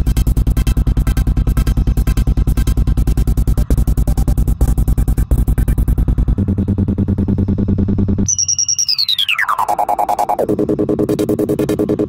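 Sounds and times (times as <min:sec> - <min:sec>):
pulsing electronic music: 0:00.0 - 0:12.0
low drone: 0:05.8 - 0:08.4
high held tone: 0:08.3 - 0:11.0.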